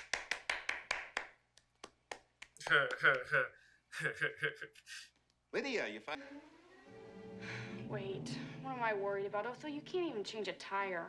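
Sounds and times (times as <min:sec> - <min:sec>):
rapid hand clapping: 0:00.0 - 0:03.5.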